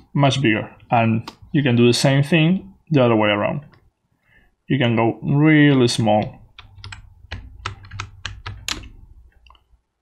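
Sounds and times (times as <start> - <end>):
computer keyboard clicking: 6.5 - 9.6.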